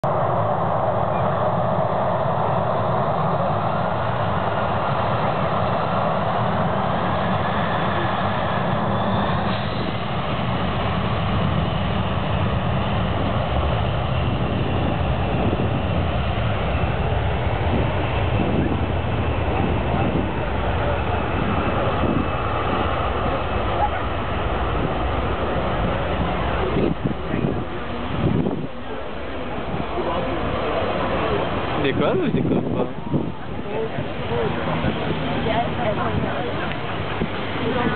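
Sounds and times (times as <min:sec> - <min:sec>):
jet engines with high whine: 0:00.0 - 0:37.9.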